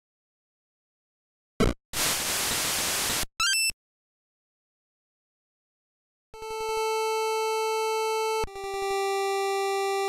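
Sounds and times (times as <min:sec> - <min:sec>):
chiptune square-wave music: 0:06.4 - 0:10.0.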